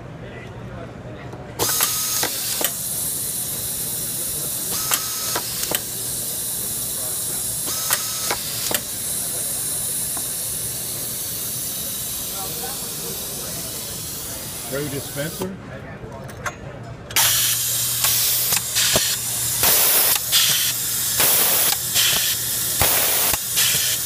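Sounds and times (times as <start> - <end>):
compressed air hiss: 1.6 - 15.5, 17.2 - 24.0
sharp clicks of screw feeder: 7.8 - 8.9, 18.0 - 24.0.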